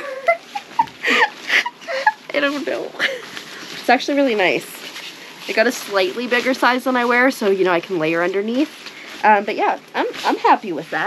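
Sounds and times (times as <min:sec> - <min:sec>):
woman laughing: 0:00.0 - 0:03.4.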